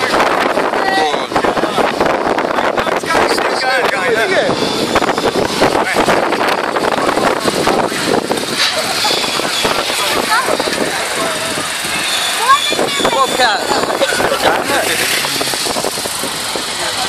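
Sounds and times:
racing car engines running: 0:00.0 - 0:17.0
spectators talking: 0:00.0 - 0:17.0.

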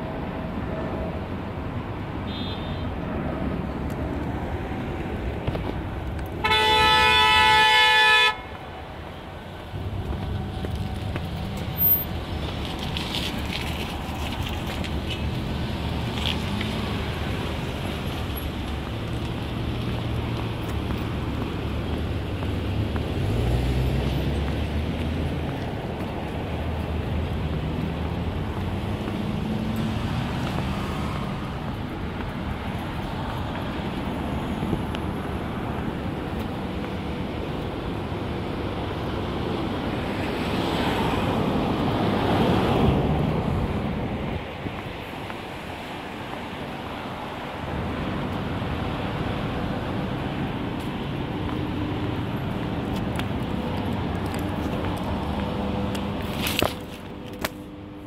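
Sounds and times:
road traffic noise: 0:00.0 - 0:58.0
vehicle passing: 0:06.7 - 0:36.1.

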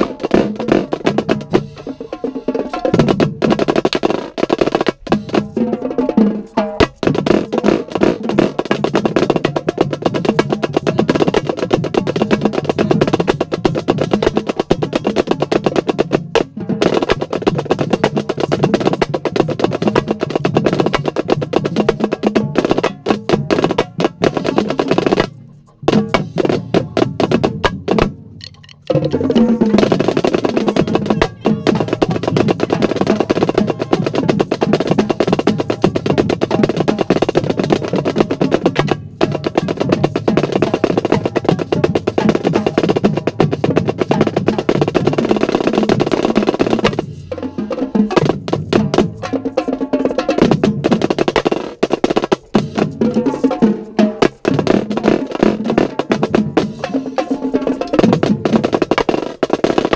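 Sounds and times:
drumline drums playing: 0:00.0 - 0:59.9
snare drum rolls: 0:00.0 - 0:59.9.

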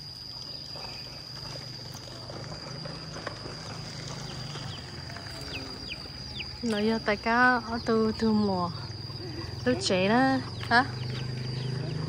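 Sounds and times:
high-pitched insect drone: 0:00.0 - 0:12.0
faint bird chirps: 0:04.1 - 0:12.0.

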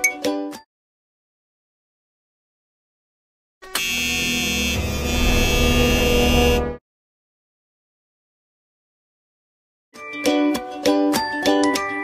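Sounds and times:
loud buzzer tone: 0:03.6 - 0:06.8.

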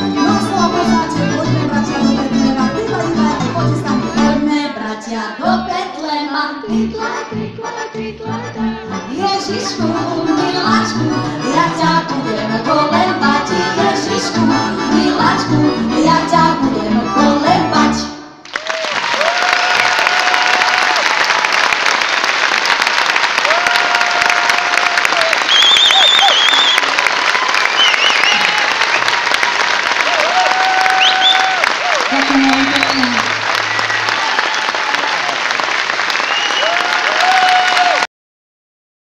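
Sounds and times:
band music: 0:00.0 - 0:05.9, 0:06.6 - 0:18.4, 0:31.8 - 0:34.5
audience applauding: 0:18.4 - 0:38.1
crowd calling out: 0:30.0 - 0:35.6, 0:36.2 - 0:38.1.

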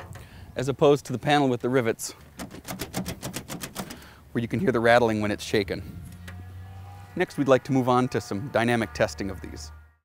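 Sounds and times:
metal panel rattling: 0:02.3 - 0:04.1.

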